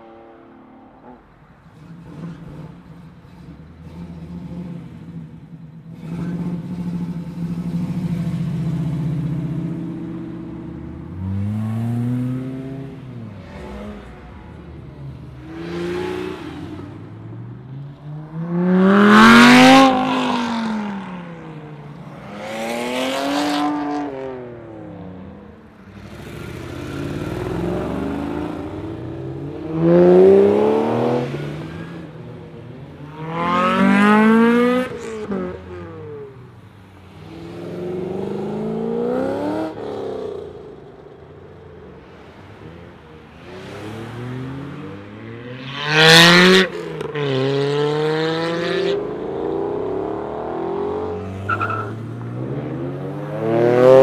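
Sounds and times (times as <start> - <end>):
sports cars accelerating past: 6.0 - 54.0.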